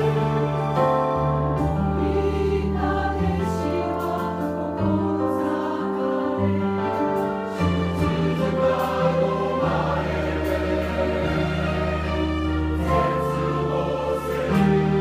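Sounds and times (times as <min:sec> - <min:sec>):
church choir singing a hymn: 0:00.0 - 0:15.0.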